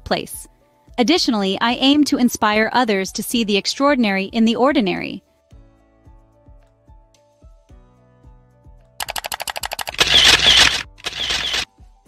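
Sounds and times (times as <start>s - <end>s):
soft background music: 0.0s - 12.0s
camera shutter clicks: 9.0s - 11.7s
loud mechanical shutter sounds: 9.0s - 11.7s.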